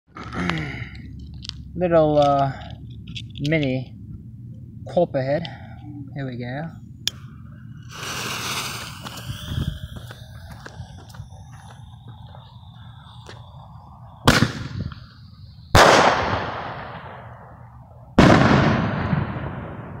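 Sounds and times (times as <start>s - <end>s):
fuse sizzling and crackling: 7.0s - 17.1s
firework shell bursting: 7.8s - 10.4s
shell launching bang: 14.2s - 14.8s, 15.7s - 17.3s, 18.2s - 20.0s.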